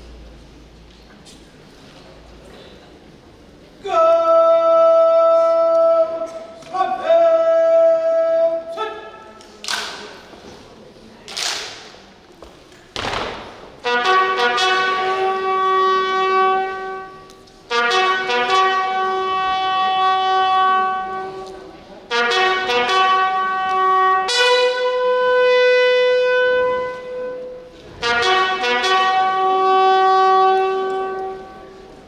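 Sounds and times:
bugle playing long notes: 13.8s - 32.0s.

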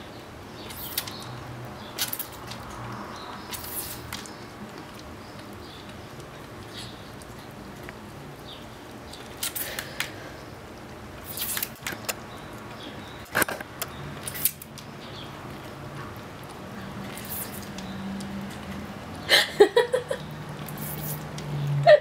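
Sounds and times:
ferret licking water: 0.6s - 13.3s, 13.9s - 19.3s
spray bottle squirts: 3.5s - 4.2s, 11.2s - 11.9s, 17.1s - 17.8s, 20.7s - 21.4s.

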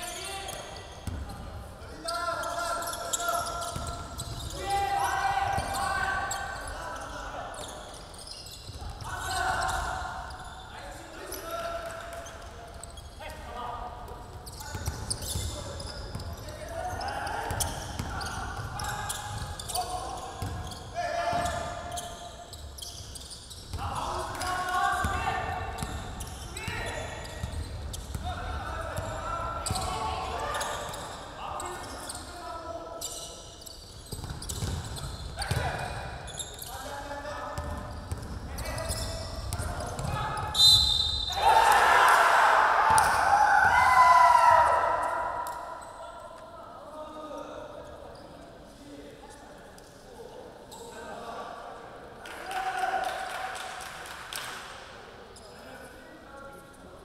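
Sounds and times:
basketball bouncing on gym floor: 34.1s - 35.8s, 37.6s - 40.4s
short high whistle: 40.6s - 41.4s
loud shouting: 41.3s - 45.4s.

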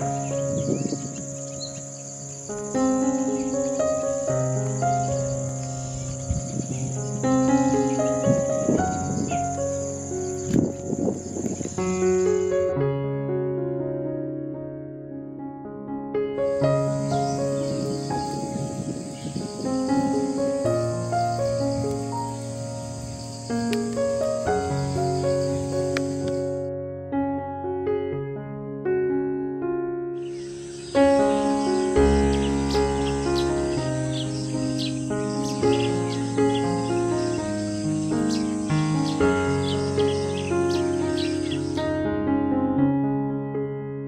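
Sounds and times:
high-pitched insect trill: 0.0s - 12.6s, 16.6s - 26.7s, 30.2s - 41.9s
gentle background music: 0.0s - 12.8s, 16.4s - 27.8s, 30.2s - 42.0s.

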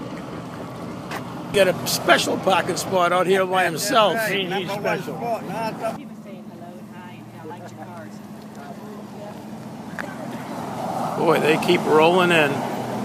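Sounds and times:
car engine humming: 0.0s - 13.0s
man's voice: 1.6s - 6.0s.

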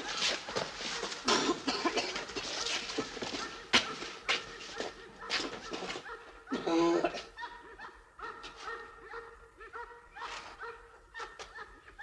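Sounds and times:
footsteps on pavement: 0.0s - 6.4s.

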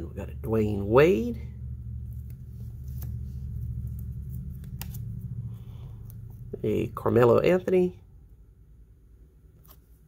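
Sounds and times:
steady low hum: 0.0s - 10.0s
cards rustling: 2.0s - 6.6s.

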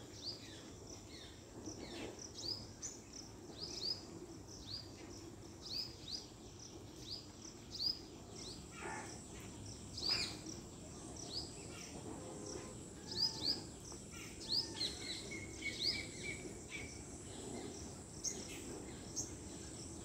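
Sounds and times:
crickets droning: 0.0s - 20.0s
bird chirps: 7.2s - 20.0s.

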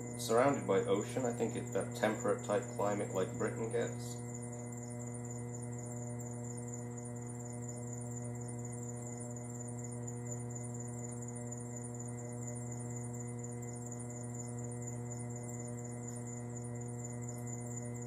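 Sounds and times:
potter's wheel electric hum: 0.0s - 18.0s.

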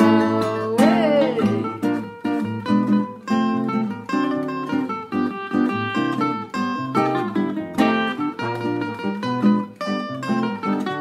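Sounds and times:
plucked cavaquinho melody: 0.0s - 11.0s
strummed acoustic guitar chords: 0.0s - 11.0s.

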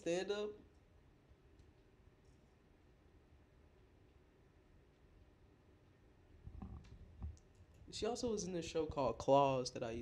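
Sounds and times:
person speaking: 0.0s - 0.7s, 7.9s - 10.0s.

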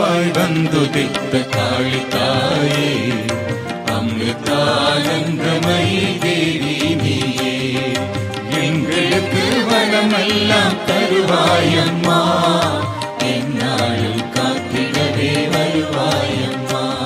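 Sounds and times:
steady percussion: 0.0s - 17.0s.

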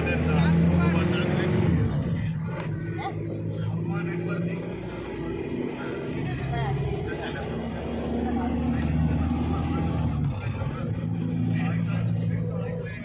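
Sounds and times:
car engine and road noise: 0.0s - 13.0s
people talking: 0.0s - 13.0s.

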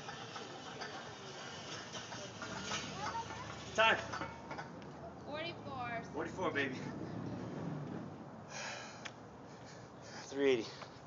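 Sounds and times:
sled runners scraping on asphalt: 0.0s - 4.1s.

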